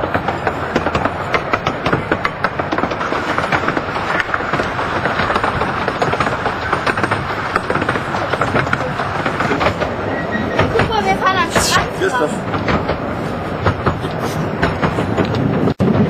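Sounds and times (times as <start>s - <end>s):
train wheels rumbling: 0.0s - 16.0s
wheels clicking over rail joints: 0.0s - 16.0s.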